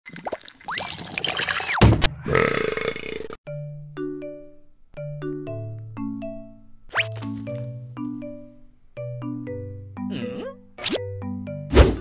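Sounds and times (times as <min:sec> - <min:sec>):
loud thump: 0:11.7 - 0:12.0.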